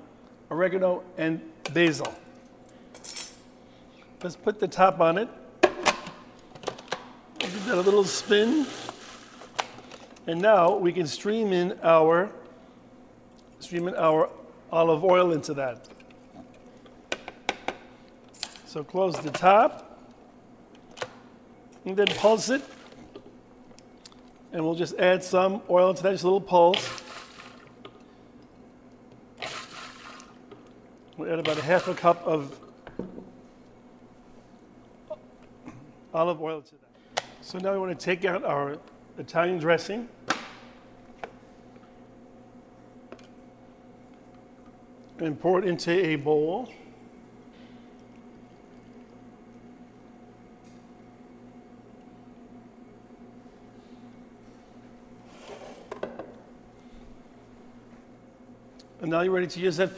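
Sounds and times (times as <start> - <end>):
faint room hum: 0.0 - 59.9
liquid sloshing in food processor: 7.4 - 9.6, 26.8 - 27.8, 29.4 - 30.4, 31.4 - 32.2.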